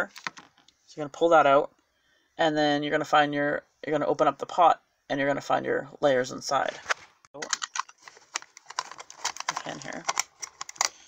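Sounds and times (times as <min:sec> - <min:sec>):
plastic packaging clicks and taps: 0:07.4 - 0:11.0.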